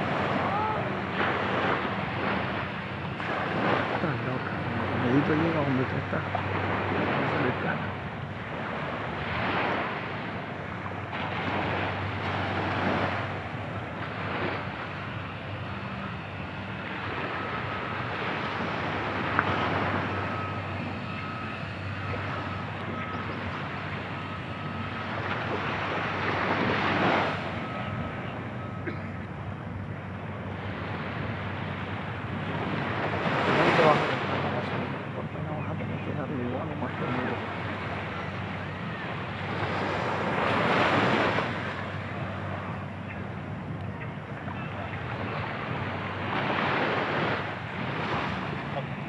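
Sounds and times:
waves washing onto beach: 0.0 - 49.0
wind buffeting microphone: 0.0 - 49.0.

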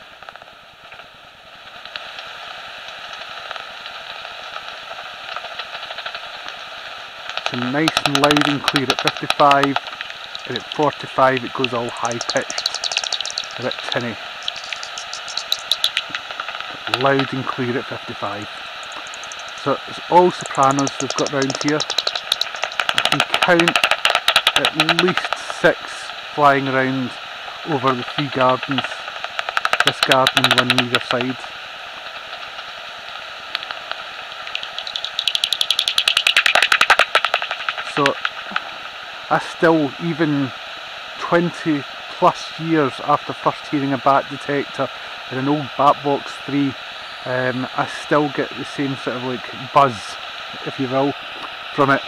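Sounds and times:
bat echolocation clicks: 7.2 - 26.8, 27.6 - 31.4, 33.5 - 39.0
bat detector hissing: 7.5 - 31.2, 34.3 - 39.2.

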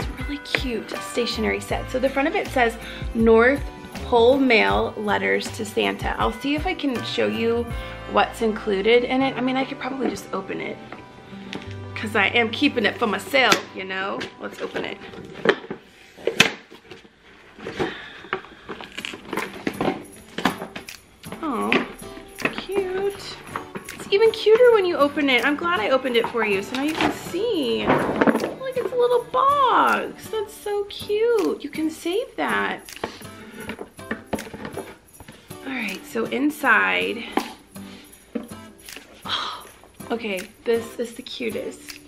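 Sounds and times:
background music: 0.0 - 16.5, 17.8 - 42.0
packaging rustling: 14.2 - 24.8, 32.8 - 35.6
box packaging clicks and taps: 32.9 - 35.4.

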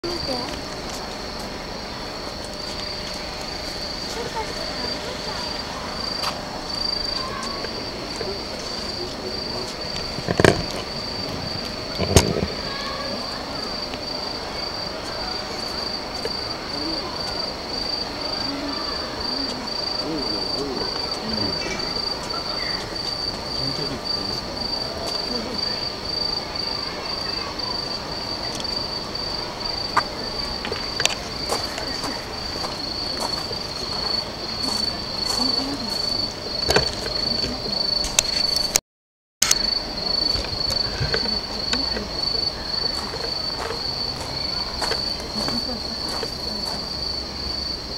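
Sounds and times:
crickets chirping: 0.0 - 38.8, 39.4 - 47.9.

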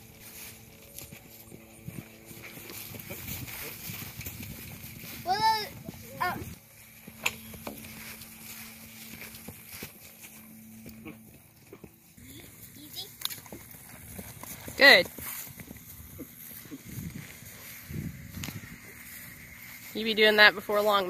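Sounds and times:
hoofbeats on grass: 0.0 - 21.0.

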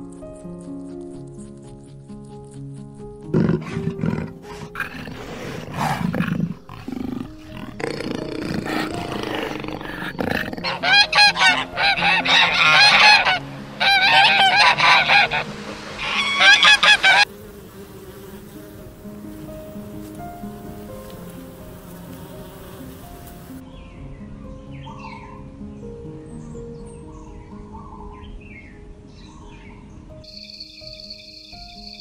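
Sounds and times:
geese honking: 8.6 - 17.4.

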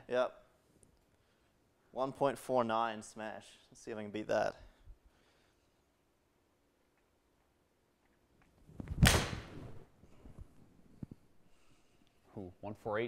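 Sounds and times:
golf ball struck crack: 9.0 - 9.6.

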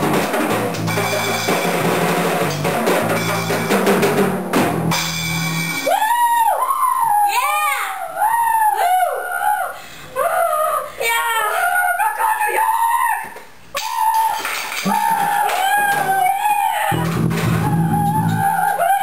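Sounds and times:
electric bass guitar: 0.0 - 5.8, 17.0 - 18.6
drum kit knocked over: 0.0 - 5.9, 17.0 - 18.4
wavering wordless wailing: 6.0 - 19.0.

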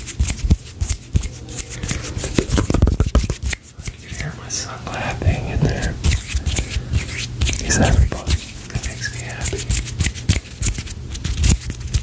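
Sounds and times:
hands rubbing by microphone: 0.0 - 4.4, 5.2 - 12.0
soft whispering: 3.8 - 6.2, 7.6 - 9.7.

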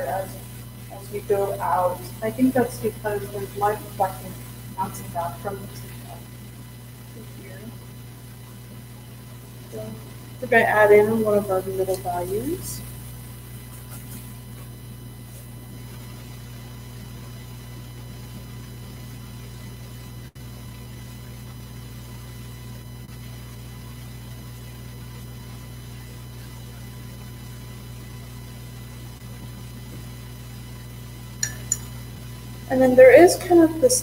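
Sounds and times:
electrical hum: 0.0 - 34.0.

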